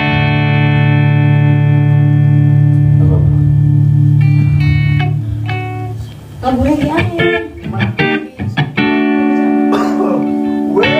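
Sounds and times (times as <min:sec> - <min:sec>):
held bass note: 0:00.0 - 0:05.9
instrumental chord ringing: 0:00.0 - 0:06.0, 0:07.0 - 0:10.9
picked notes: 0:00.0 - 0:10.9.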